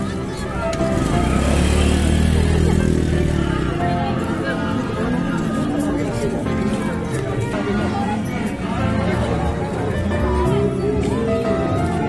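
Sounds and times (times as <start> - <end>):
motorcycle engine running: 0.6 - 4.4.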